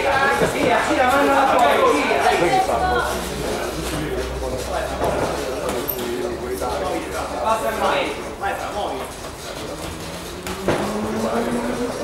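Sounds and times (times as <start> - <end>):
sports hall din: 0.0 - 12.0.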